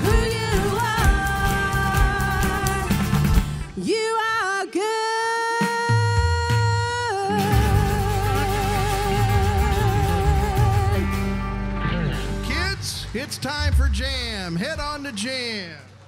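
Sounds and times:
electric guitar: 0.0s - 3.8s, 7.2s - 13.7s
drums: 0.0s - 4.3s, 5.4s - 15.4s.

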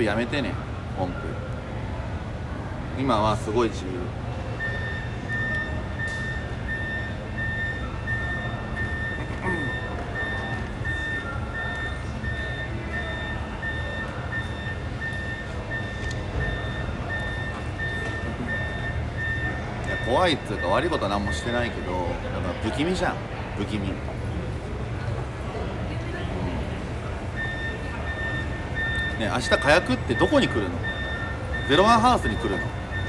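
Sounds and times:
low engine rumble: 0.0s - 33.0s
electronic warning beeper: 4.5s - 22.1s, 27.3s - 33.0s.

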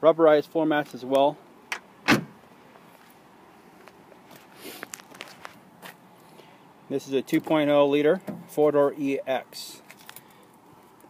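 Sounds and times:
car trunk lid thump: 2.0s - 2.4s
light scuffs: 2.2s - 6.4s
faint footsteps: 2.7s - 6.4s.

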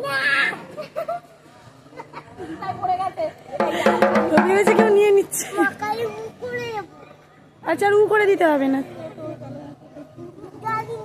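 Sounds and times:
barrel drum struck with sticks: 3.6s - 5.3s.

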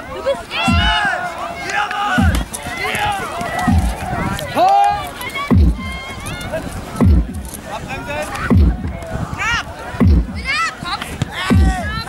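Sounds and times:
people shouting: 0.0s - 12.0s
low drum beat: 0.6s - 1.1s, 2.2s - 2.6s, 3.5s - 4.4s, 5.5s - 6.1s, 6.9s - 7.7s, 8.4s - 9.3s, 10.0s - 10.8s, 11.4s - 12.0s.

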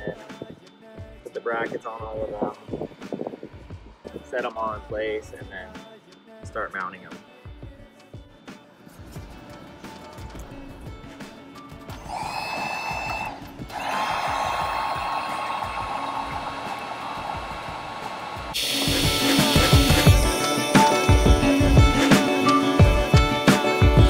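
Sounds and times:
background music: 0.0s - 24.0s
heat gun blowing with whine: 11.9s - 14.1s, 17.4s - 24.0s.

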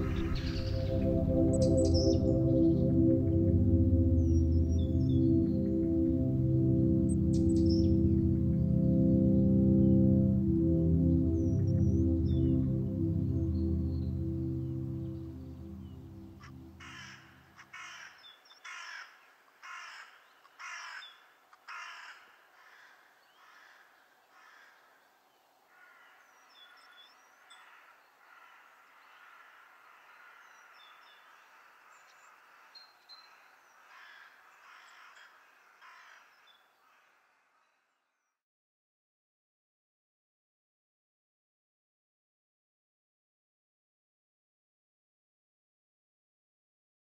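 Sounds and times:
high bird chirps: 0.0s - 2.9s
low layered drone: 0.0s - 17.5s
crow cawing: 16.8s - 25.0s, 25.7s - 37.8s.

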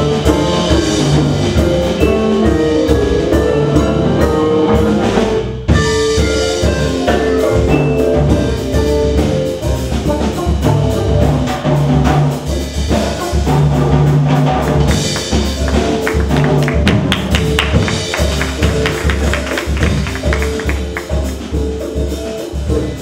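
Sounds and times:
vibraphone played with mallets: 0.0s - 11.4s, 14.9s - 23.0s
jazz band playing: 0.0s - 23.0s.

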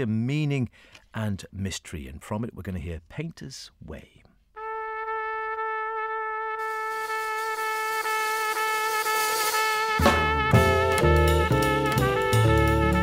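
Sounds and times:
held trumpet note: 4.6s - 13.0s
drums: 6.6s - 13.0s
bass: 10.0s - 13.0s
keyboard chords: 10.0s - 13.0s.

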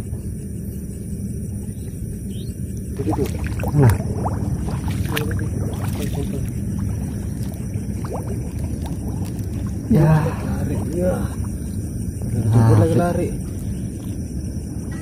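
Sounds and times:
water sloshing and splashing: 2.9s - 14.9s.

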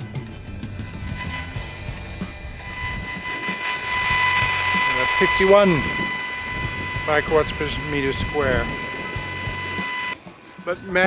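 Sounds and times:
rf meter buzz with hiss: 0.0s - 11.0s.

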